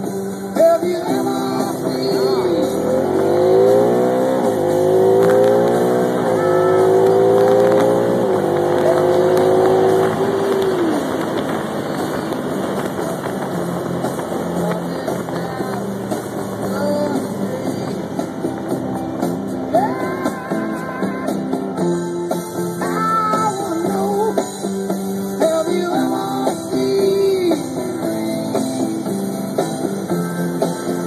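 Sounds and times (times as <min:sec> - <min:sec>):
car engine accelerating: 0:00.0 - 0:31.0
road and tyre noise: 0:00.0 - 0:31.0.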